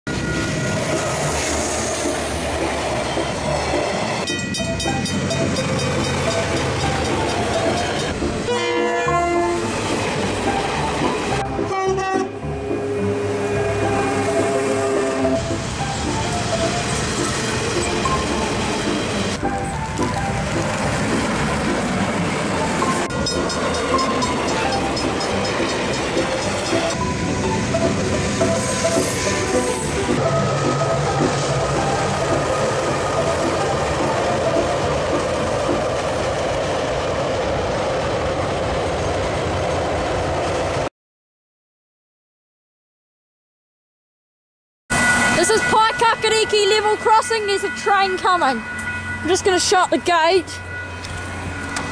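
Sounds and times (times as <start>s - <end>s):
freight train wagons rumbling: 0.1s - 40.9s, 44.9s - 51.9s
level crossing bells ringing: 4.2s - 8.2s, 22.6s - 28.4s, 44.9s - 51.9s
train horn: 8.5s - 9.7s, 11.5s - 15.4s.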